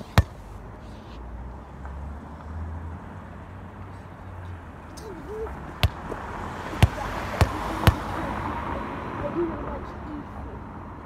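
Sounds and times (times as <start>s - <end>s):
outdoor background: 0.0s - 11.0s
faint voice: 5.0s - 5.7s
sharp knocks: 5.8s - 6.2s.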